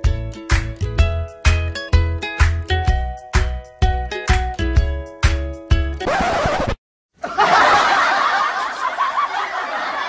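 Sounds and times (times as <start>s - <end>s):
people laughing: 7.2s - 10.0s.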